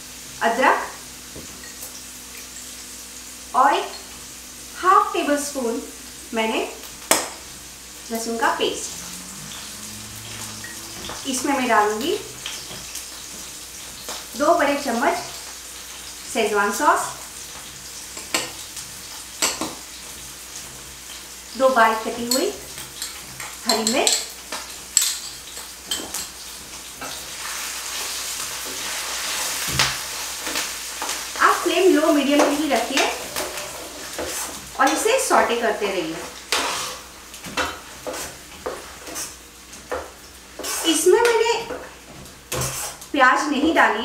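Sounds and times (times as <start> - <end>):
food sizzling in oil: 0.0 - 44.0
spatula scraping frying pan: 8.2 - 14.2, 22.1 - 35.5, 36.1 - 43.1.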